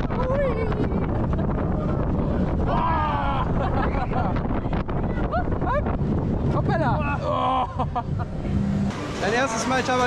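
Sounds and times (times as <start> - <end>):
roller coaster rumbling on track: 0.0 - 10.0.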